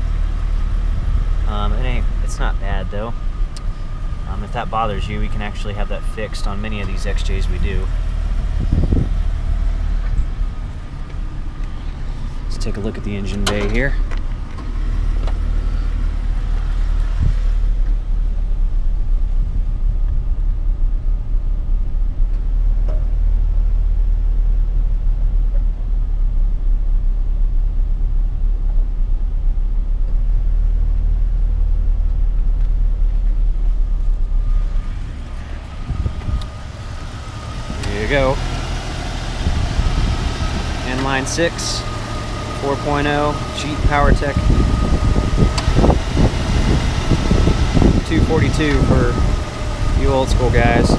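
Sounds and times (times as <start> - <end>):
car engine idling: 0.0 - 50.9
man's voice: 4.2 - 7.9, 12.5 - 14.0, 42.6 - 44.5, 48.0 - 49.3, 50.0 - 50.9.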